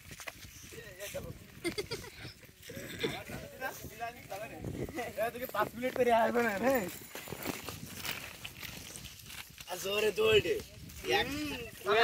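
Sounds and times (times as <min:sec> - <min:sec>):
boys calling out with bleat-like cries: 0:11.0 - 0:12.0.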